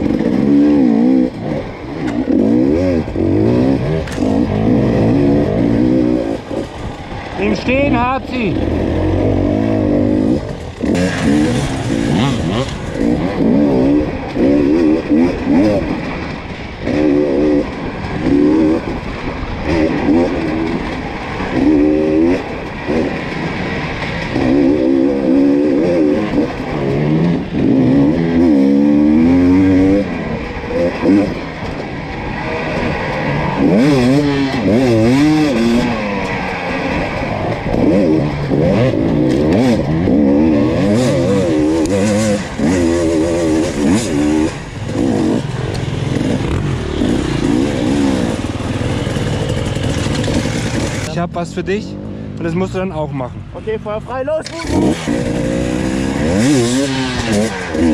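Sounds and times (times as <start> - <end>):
dirt bike engine revving: 0.0 - 57.9.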